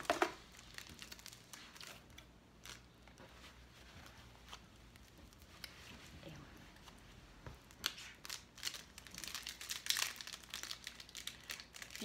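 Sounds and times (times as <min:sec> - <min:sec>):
plastic wrapper crinkling: 0:00.0 - 0:03.0, 0:07.7 - 0:12.0.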